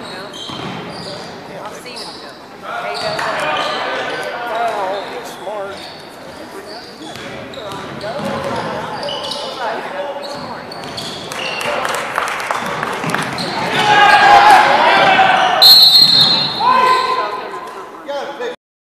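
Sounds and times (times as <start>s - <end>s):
sneaker squeaks: 0.0s - 11.8s, 12.6s - 13.9s, 15.3s - 17.4s
ball bouncing on hardwood court: 0.5s - 0.9s, 7.1s - 8.7s, 10.3s - 11.4s, 12.7s - 13.8s
spectators shouting and cheering: 11.5s - 17.6s
shrill referee whistle: 15.4s - 17.2s.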